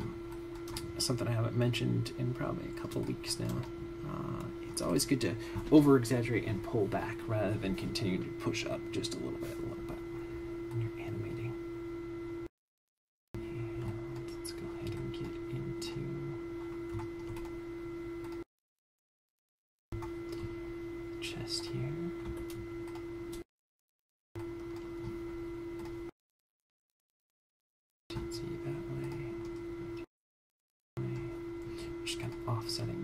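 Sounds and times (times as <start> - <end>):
steady mid-pitched hum: 0.0 - 12.5, 13.4 - 18.5, 20.0 - 23.4, 24.4 - 26.1, 28.1 - 30.1, 31.0 - 33.0.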